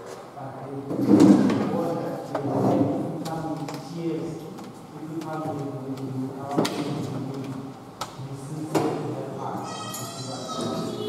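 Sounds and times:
man talking: 0:08.2 - 0:11.0.

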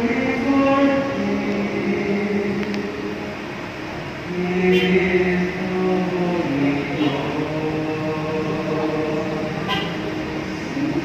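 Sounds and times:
group singing a slow hymn: 0:00.0 - 0:11.0.

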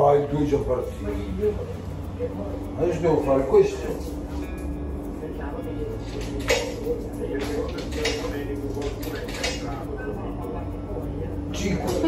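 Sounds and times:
wallet and coins rattling: 0:06.0 - 0:09.9.

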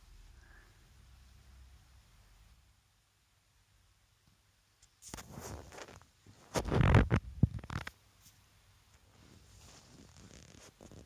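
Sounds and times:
faint rustle: 0:04.8 - 0:11.0
rubbing and scraping handling noise: 0:04.8 - 0:11.0.

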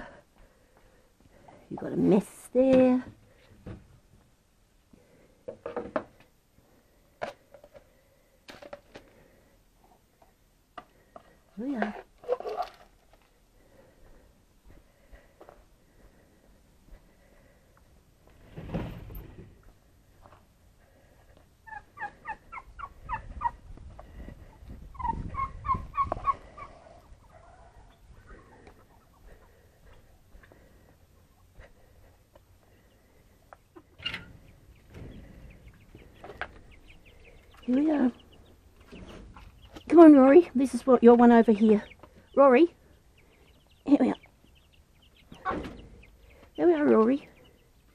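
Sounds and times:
knocks and clatters of handling: 0:08.5 - 0:09.2
turkey gobbling: 0:25.0 - 0:29.3.

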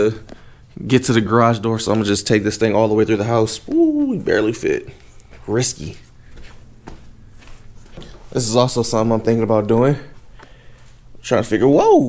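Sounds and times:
footsteps on concrete: 0:03.7 - 0:08.4.

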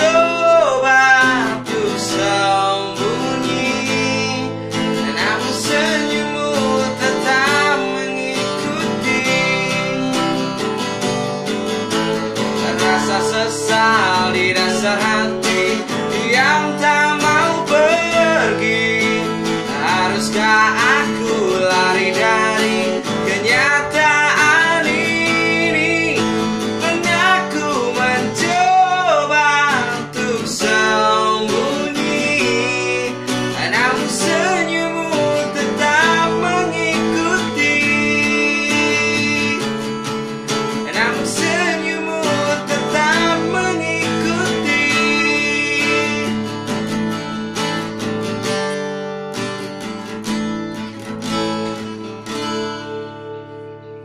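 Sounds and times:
man singing: 0:00.0 - 0:11.2, 0:11.9 - 0:46.9
acoustic guitar: 0:00.0 - 0:54.0.

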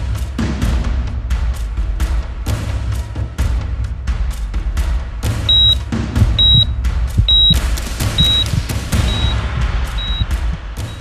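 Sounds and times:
music with drum beat and bass: 0:00.0 - 0:11.0
high electronic beep: 0:05.5 - 0:09.4, 0:10.0 - 0:11.0.

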